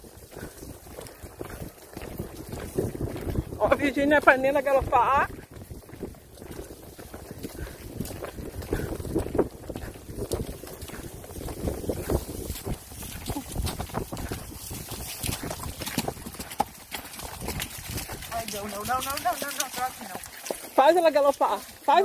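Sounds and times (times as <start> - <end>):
horse hoofbeats on dirt trail: 0.0 - 22.0.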